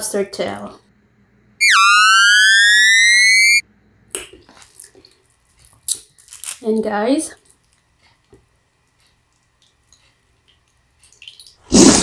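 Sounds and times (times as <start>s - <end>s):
buzzy electronic tone: 1.6s - 3.6s.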